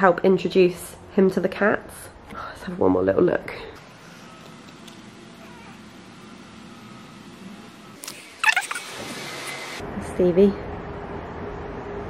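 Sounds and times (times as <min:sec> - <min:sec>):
high mewing cry: 0:05.2 - 0:06.0, 0:08.4 - 0:09.0.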